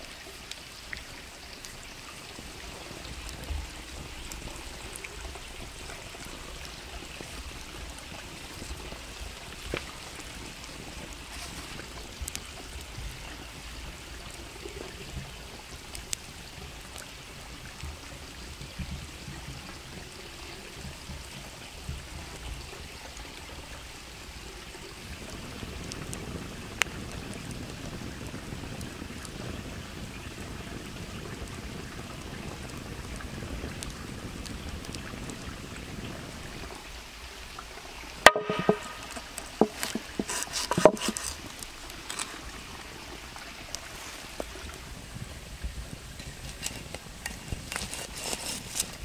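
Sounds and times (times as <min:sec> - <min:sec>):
rushing water-like background noise: 0:00.0 - 0:49.0
knife chopping on wooden board: 0:38.3 - 0:39.0.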